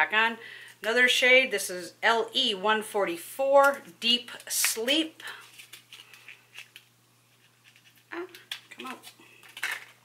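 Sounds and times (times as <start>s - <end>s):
plastic packaging clicks and scratching: 5.2s - 10.0s.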